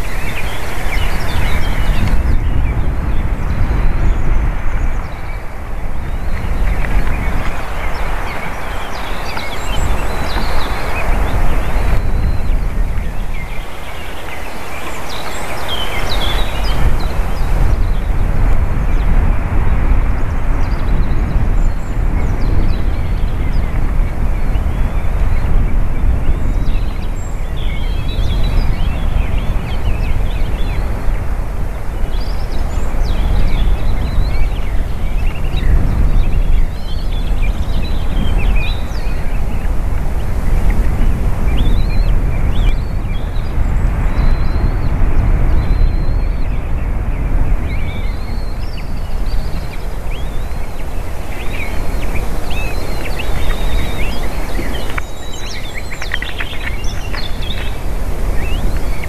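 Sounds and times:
small birds singing: 0.0 - 59.0
wind buffeting microphone: 0.0 - 59.0.

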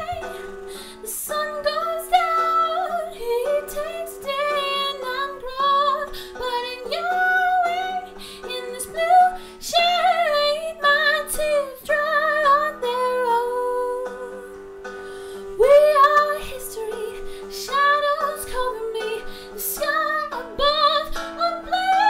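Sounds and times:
woman singing: 0.0 - 14.6, 15.5 - 22.0
instrumental backing track: 0.0 - 22.0.

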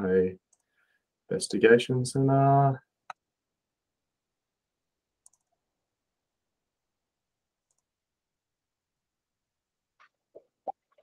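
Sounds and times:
computer mouse clicks: 5.2 - 5.6, 7.7 - 7.9.

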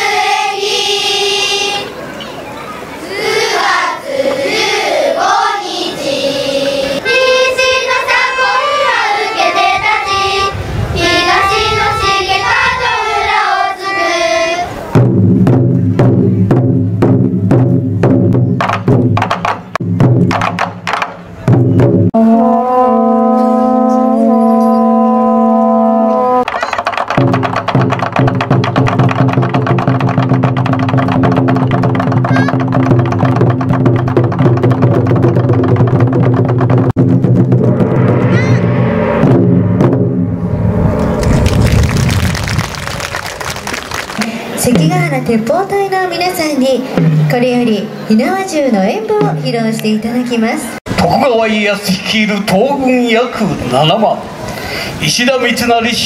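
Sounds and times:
children singing in unison: 0.0 - 2.0, 3.0 - 14.8
taiko drums playing: 14.9 - 22.6, 26.4 - 44.0, 44.7 - 45.5, 47.0 - 47.6, 49.2 - 49.7.

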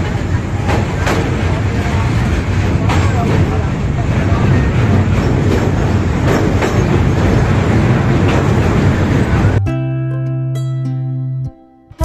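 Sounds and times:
track clacks: 0.0 - 9.6
train wheels rumbling on rails: 0.0 - 9.6.

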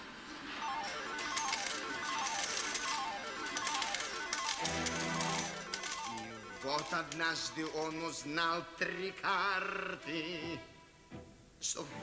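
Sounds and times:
clatter of coins: 0.6 - 8.0.

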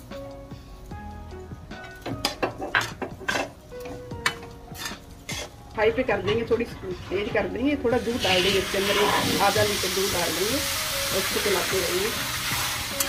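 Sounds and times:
steel spatula scraping a pan: 4.2 - 9.7.

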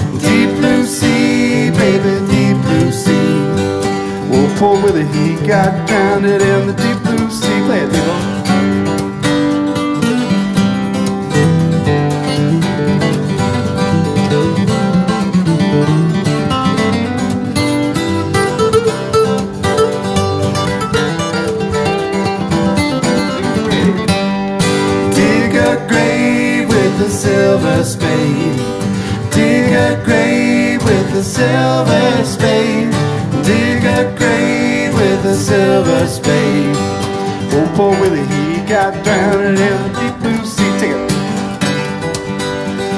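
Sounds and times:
acoustic guitar lead solo: 0.0 - 42.9
rhythm acoustic guitars: 0.0 - 42.9.

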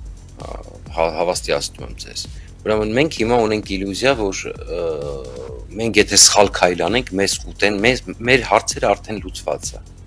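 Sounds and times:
faint background music: 0.0 - 10.0
man speaking: 0.4 - 9.8.

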